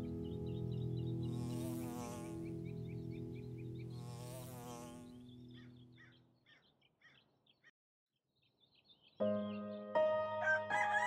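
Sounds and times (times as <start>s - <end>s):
soft musical drone: 0.0s - 6.0s
flying insect buzzing: 1.1s - 5.8s.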